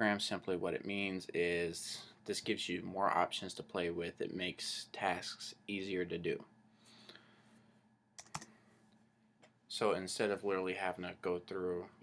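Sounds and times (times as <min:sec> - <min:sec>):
computer keyboard keystrokes: 0:08.2 - 0:08.5.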